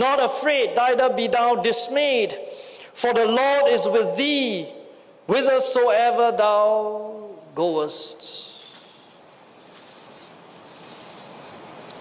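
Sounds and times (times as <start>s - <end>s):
paper rustling: 8.6s - 12.0s.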